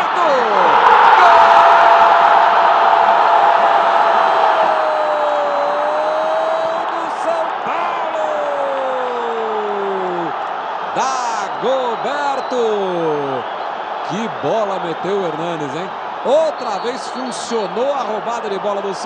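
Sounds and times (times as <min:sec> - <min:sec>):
commentator talking: 0:00.0 - 0:01.6, 0:05.9 - 0:10.3, 0:10.9 - 0:13.4, 0:14.1 - 0:19.0
commentator shouting goal: 0:00.0 - 0:01.8, 0:04.6 - 0:10.3, 0:10.9 - 0:13.5, 0:14.1 - 0:19.0
stadium crowd noise: 0:00.0 - 0:19.0.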